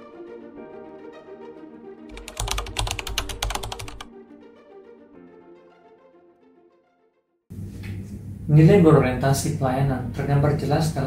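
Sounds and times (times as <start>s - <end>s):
background music: 0.0s - 7.4s.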